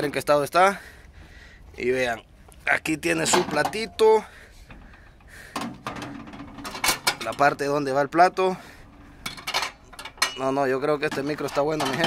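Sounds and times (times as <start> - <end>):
glass clinking on metal: 9.2 - 12.0.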